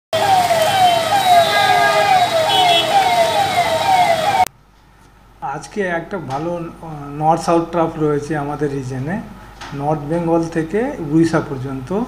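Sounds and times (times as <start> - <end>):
electronic siren wailing: 0.2 - 4.5.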